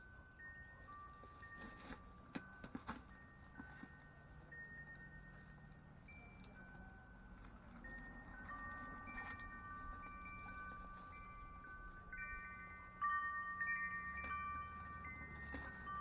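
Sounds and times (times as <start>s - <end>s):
wind chimes ringing: 0.0s - 16.0s.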